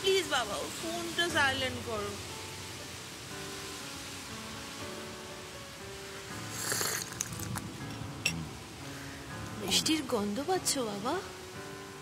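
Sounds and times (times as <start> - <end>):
rain hissing: 0.0 - 12.0
soft music with held notes: 0.0 - 12.0.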